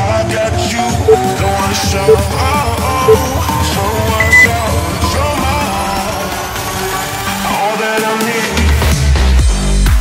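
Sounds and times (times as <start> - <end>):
high-pitched timer beep: 3.1 - 3.3, 4.2 - 4.5.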